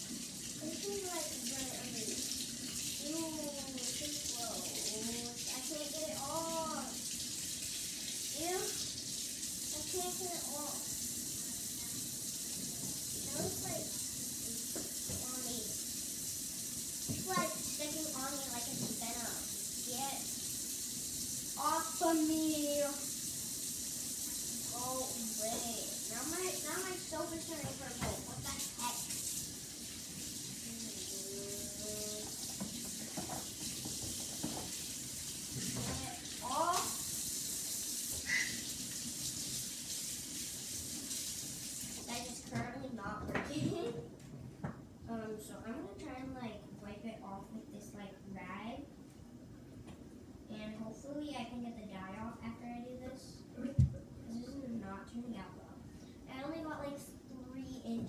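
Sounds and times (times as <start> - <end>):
tap water running into sink: 0.0 - 43.5.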